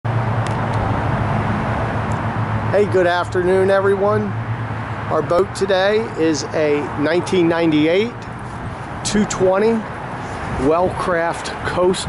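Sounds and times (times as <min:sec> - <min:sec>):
low rumble of road traffic: 0:00.1 - 0:12.0.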